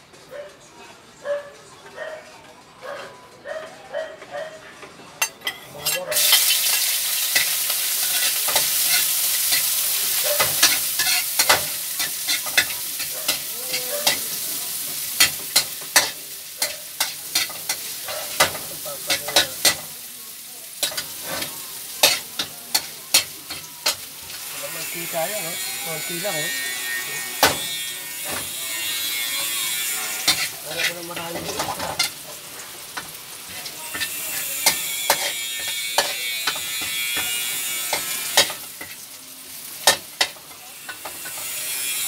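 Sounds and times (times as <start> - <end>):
metal spatula scraping pan: 5.2 - 19.9, 20.8 - 39.0, 39.8 - 42.0
cabbage sizzling in pan: 5.8 - 42.0.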